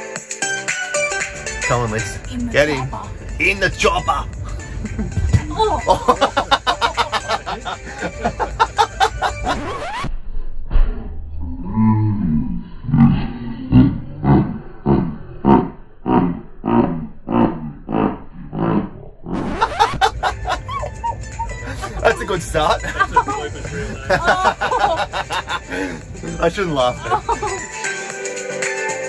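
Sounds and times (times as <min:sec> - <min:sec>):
music-backed edited sound: 0:00.0 - 0:10.1, 0:19.4 - 0:29.0.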